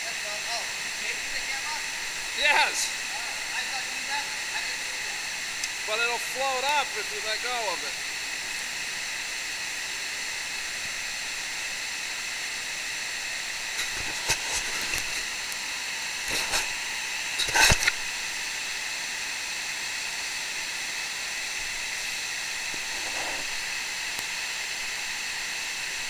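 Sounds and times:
underwater hiss: 7.5s - 26.0s
short bursts of noise: 16.2s - 18.1s, 22.5s - 24.2s.

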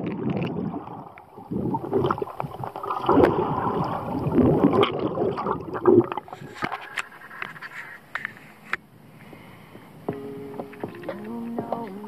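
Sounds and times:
water sloshing and dripping: 0.0s - 8.3s
background music: 10.1s - 12.0s.

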